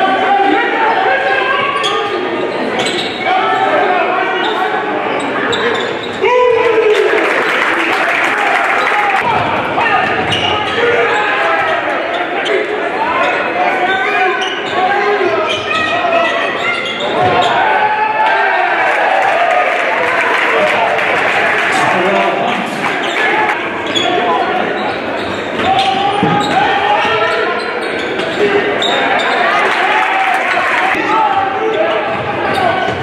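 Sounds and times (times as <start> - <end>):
spectators shouting: 3.2 - 24.8, 25.6 - 33.0.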